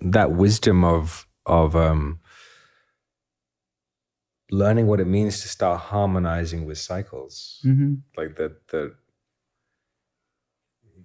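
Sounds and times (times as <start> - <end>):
man speaking: 0.0 - 2.2, 4.5 - 9.0.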